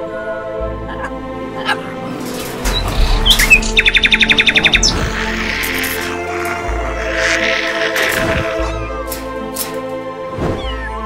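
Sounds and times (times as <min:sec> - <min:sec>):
background music: 0:00.0 - 0:11.0
bird chirping and trilling: 0:02.2 - 0:09.0.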